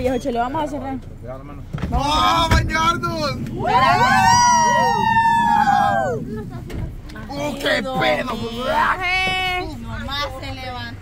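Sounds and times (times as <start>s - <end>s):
people whooping: 3.5s - 6.5s.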